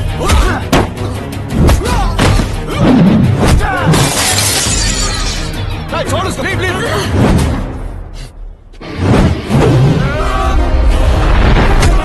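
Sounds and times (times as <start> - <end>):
background music: 0.0 - 12.0
glass shattering effect: 3.9 - 5.6.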